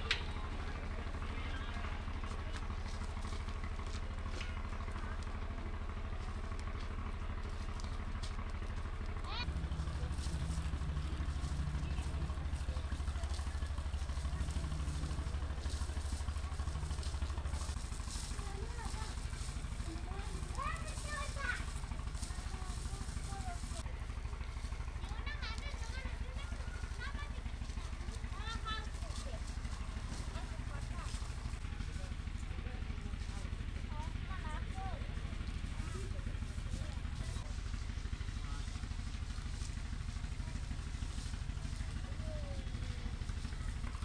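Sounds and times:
low outdoor rumble: 0:00.0 - 0:44.0.

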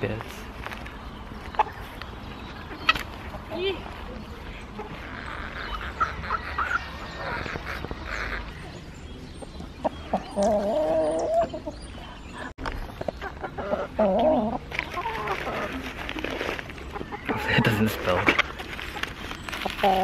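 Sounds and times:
chickens clucking: 0:00.0 - 0:20.0.

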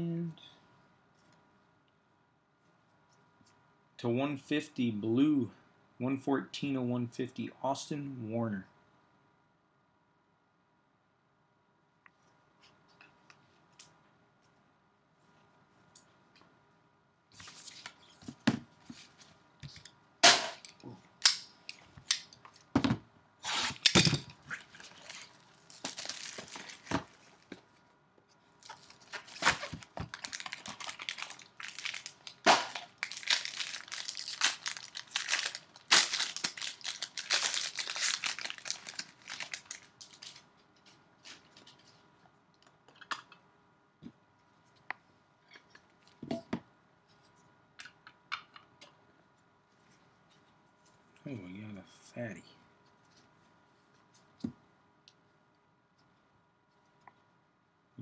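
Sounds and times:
plastic wrapping tearing: 0:23.5 - 0:27.6, 0:28.6 - 0:40.4
plastic crinkling: 0:24.4 - 0:27.8, 0:28.6 - 0:41.9.

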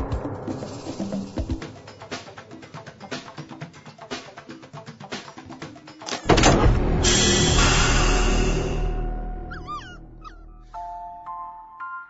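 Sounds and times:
puppy yips: 0:09.5 - 0:10.8.

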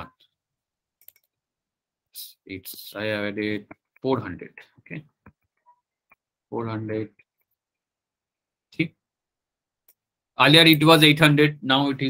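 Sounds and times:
faint computer clicks: 0:01.0 - 0:01.4.

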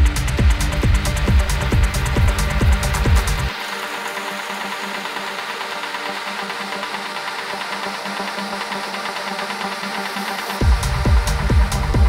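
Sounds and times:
techno kick drum and bass: 0:00.0 - 0:03.6, 0:10.3 - 0:12.0.

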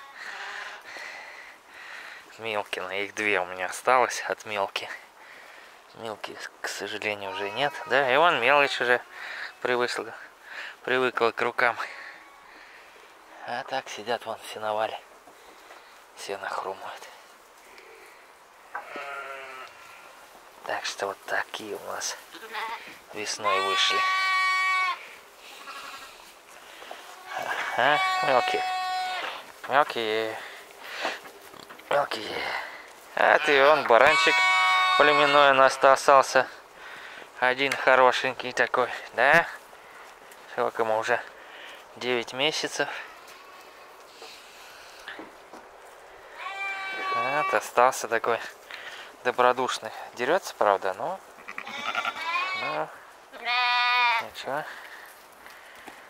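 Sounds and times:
sheep bleating: 0:07.2 - 0:09.8, 0:18.7 - 0:20.1, 0:22.3 - 0:26.2, 0:27.1 - 0:29.4, 0:33.2 - 0:36.1, 0:46.3 - 0:47.8, 0:51.4 - 0:54.3.

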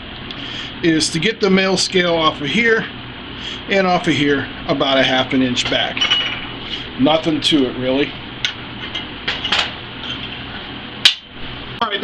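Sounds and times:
shop background hum: 0:00.0 - 0:12.0.

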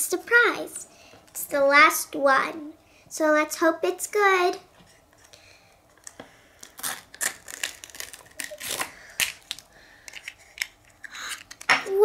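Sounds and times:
foil crinkling and tearing: 0:06.6 - 0:10.7.

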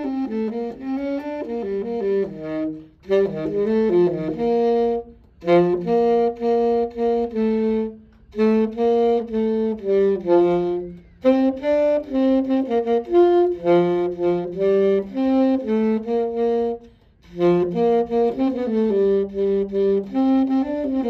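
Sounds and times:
solo saxophone melody: 0:00.0 - 0:21.0.

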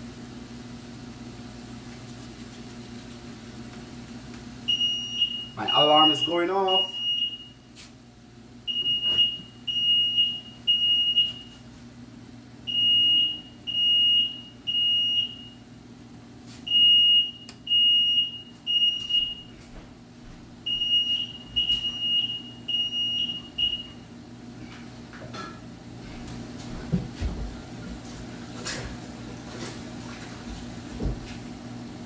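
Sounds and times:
smoke alarm beeping: 0:04.7 - 0:07.7, 0:08.7 - 0:11.6, 0:12.6 - 0:15.6, 0:16.7 - 0:19.6, 0:20.6 - 0:24.2.

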